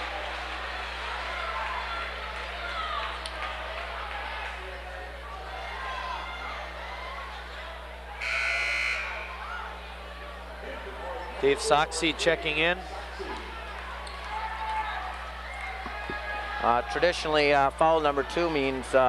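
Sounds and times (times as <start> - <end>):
murmur of voices: 0.0 - 19.0
gymnasium buzzer: 8.2 - 10.1.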